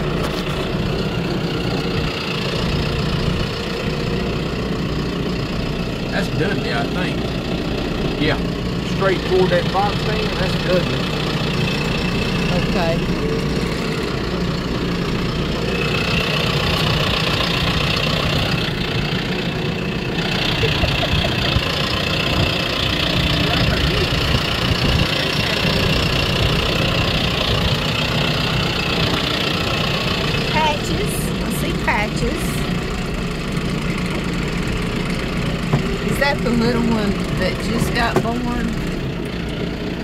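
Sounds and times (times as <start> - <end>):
vehicle engine running: 0.0 - 40.0.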